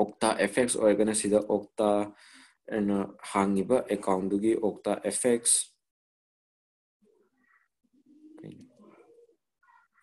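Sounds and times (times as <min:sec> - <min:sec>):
bird cooing: 0:07.3 - 0:10.0.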